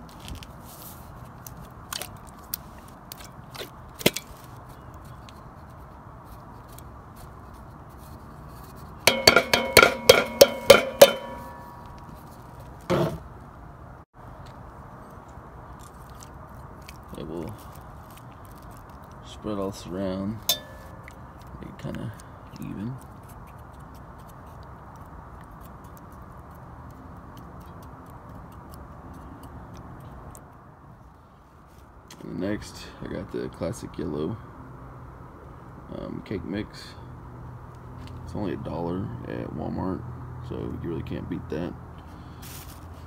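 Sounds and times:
metal can clanging on pot rim: 9.1s - 11.9s, 20.5s - 21.0s.

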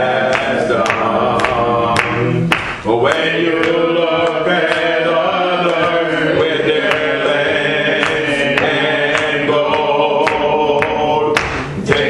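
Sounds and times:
group singing a hymn: 0.0s - 12.0s
hand claps on the beat: 0.0s - 12.0s.

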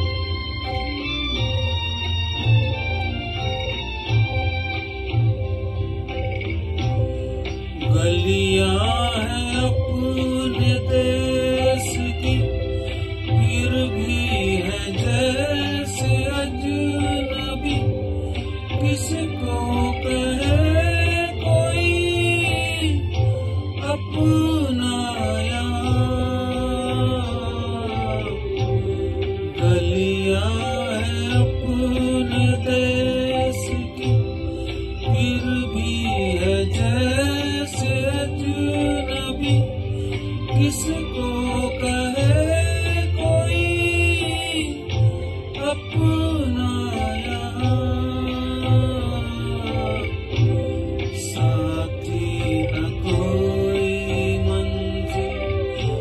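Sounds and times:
instrumental backing with soft beat: 0.0s - 56.0s
man singing sad song: 7.8s - 56.0s.

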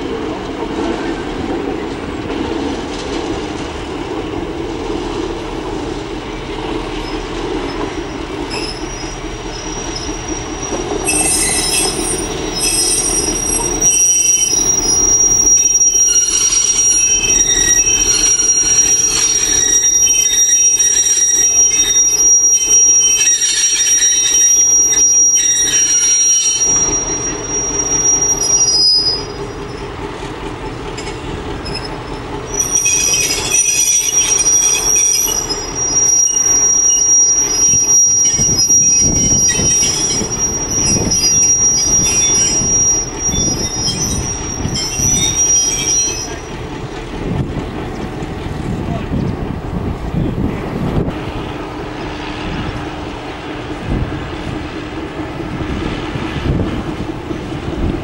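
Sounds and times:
high-pitched steel squeal: 6.9s - 30.0s, 31.6s - 46.7s.

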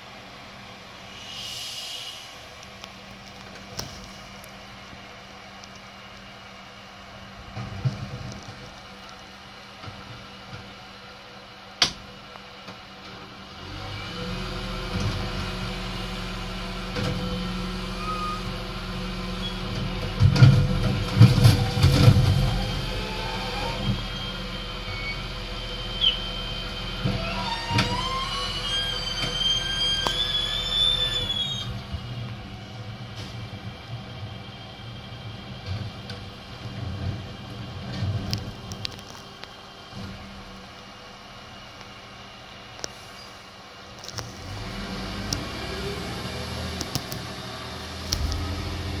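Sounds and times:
rising mechanical whine: 0.0s - 10.3s, 13.1s - 43.4s, 44.0s - 49.0s
bin lorry engine running: 0.0s - 49.0s.

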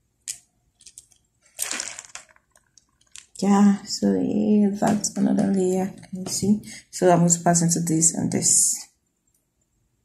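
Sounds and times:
beads clicking together: 0.2s - 3.5s
fishing line rasping through beads: 0.3s - 3.5s.

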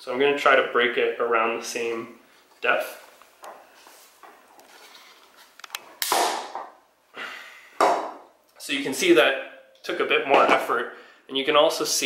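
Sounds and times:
plastic snapping with sharp crack: 5.6s - 6.6s.

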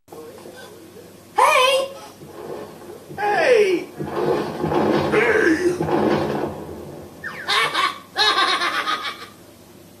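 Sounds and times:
cartoon character laughing: 7.3s - 9.4s.

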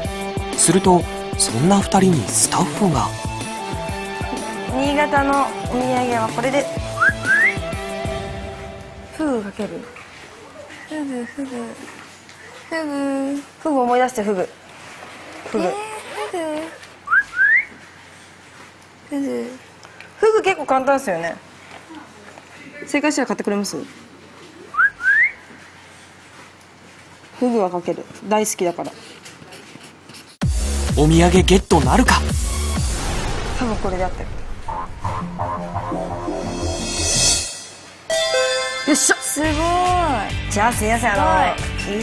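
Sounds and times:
background music: 0.0s - 9.9s, 30.4s - 33.7s, 34.7s - 42.0s
whistle-like rising glides: 7.0s - 7.7s.

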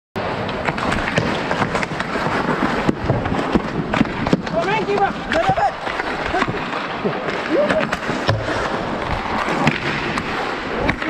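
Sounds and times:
hockey sticks and puck clacking: 0.2s - 11.0s
skates scraping on ice: 0.2s - 11.0s.

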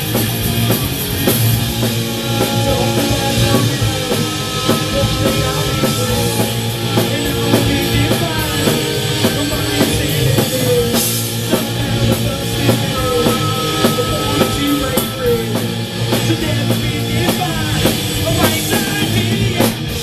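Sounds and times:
bass guitar: 0.0s - 20.0s
drum kit: 0.0s - 20.0s
electric guitars: 0.0s - 20.0s
woman singing lead: 2.1s - 19.8s.

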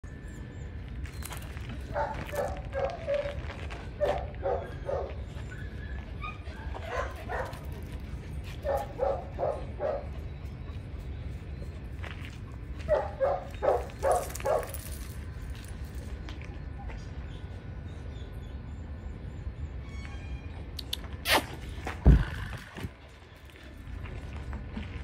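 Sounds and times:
dog barking: 1.9s - 3.3s, 4.0s - 5.1s, 8.6s - 10.1s, 12.9s - 14.7s.

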